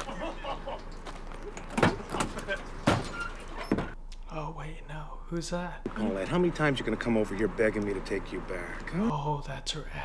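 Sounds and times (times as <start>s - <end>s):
metal door clanking open: 1.7s - 4.0s.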